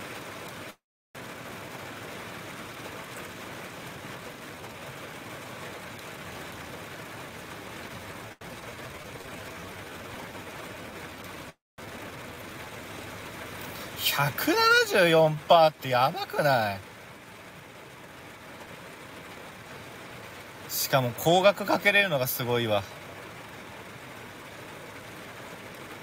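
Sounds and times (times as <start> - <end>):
steady hiss: 13.0 - 26.0.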